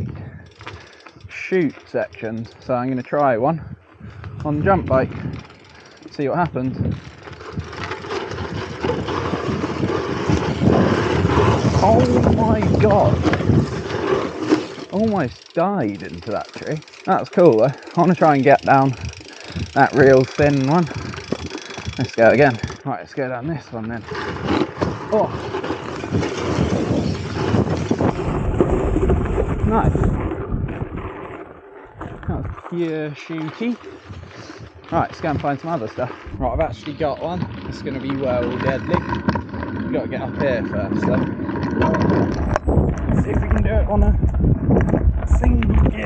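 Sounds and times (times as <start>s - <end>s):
wind noise on microphone: 0.0s - 0.4s, 3.5s - 5.6s, 6.4s - 14.4s, 18.7s - 22.8s, 24.0s - 32.7s, 36.2s - 46.0s
bike knocking and rattling: 0.0s - 46.0s
bike tyres on loose dirt: 0.0s - 46.0s.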